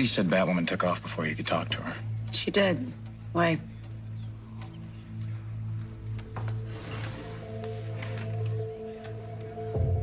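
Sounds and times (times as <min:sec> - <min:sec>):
low drone music: 0:00.0 - 0:10.0.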